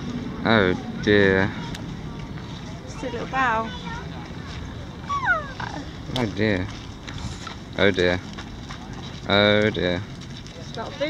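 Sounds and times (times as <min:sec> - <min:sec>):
deer squealing: 0:05.0 - 0:05.9.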